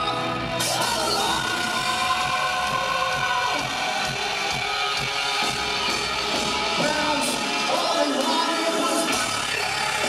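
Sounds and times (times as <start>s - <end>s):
bass: 0.0s - 10.0s
drums: 0.0s - 10.0s.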